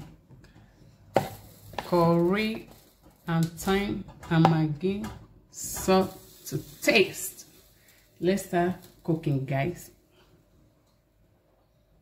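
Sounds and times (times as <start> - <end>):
person speaking: 1.8 - 2.7, 3.3 - 10.0.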